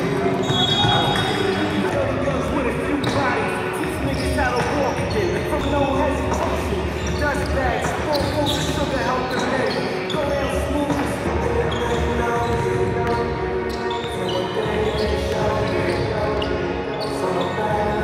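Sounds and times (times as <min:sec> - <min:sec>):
voices: 0:00.0 - 0:18.0.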